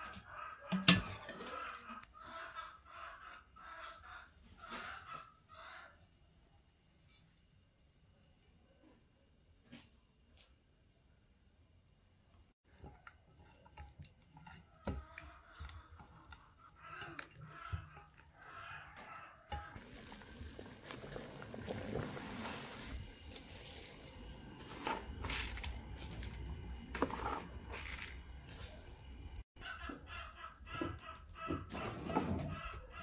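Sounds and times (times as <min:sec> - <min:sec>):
pot of water boiling: 0:19.5 - 0:29.4.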